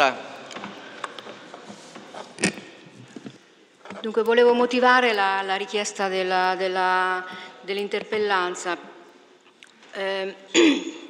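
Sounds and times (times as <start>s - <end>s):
person clearing throat: 2.4s - 3.0s, 10.5s - 11.0s.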